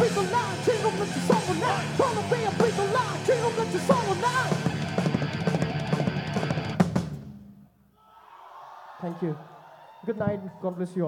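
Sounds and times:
rock band playing: 0:00.0 - 0:07.0
faint crowd cheering: 0:08.0 - 0:11.0.

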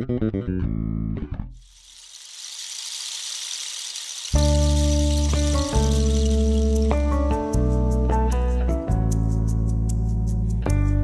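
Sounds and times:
high hiss: 0:01.6 - 0:07.2.

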